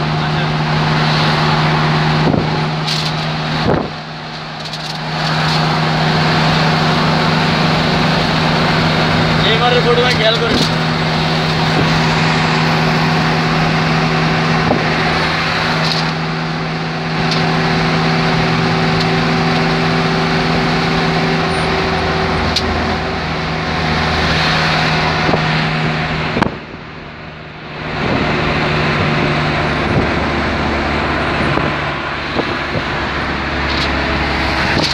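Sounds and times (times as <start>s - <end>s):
low engine hum: 0.0s - 34.9s
tyre and wind noise: 0.6s - 26.9s, 27.8s - 34.9s.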